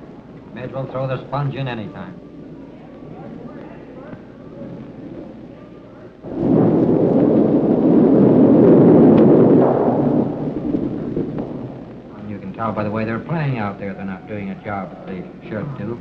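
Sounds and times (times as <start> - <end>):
faint voices murmuring: 0.0 - 7.8, 11.8 - 16.0.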